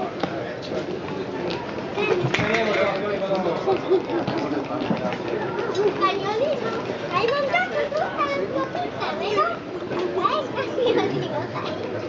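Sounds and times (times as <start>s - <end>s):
murmur of chatter: 0.0s - 12.0s.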